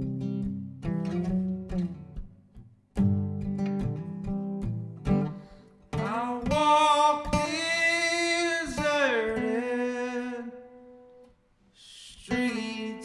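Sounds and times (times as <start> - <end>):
acoustic guitar strums: 0.0 - 13.0.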